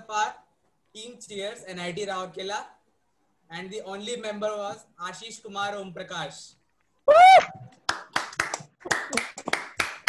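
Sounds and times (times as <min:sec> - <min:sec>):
hand clapping: 0:07.7 - 0:10.0.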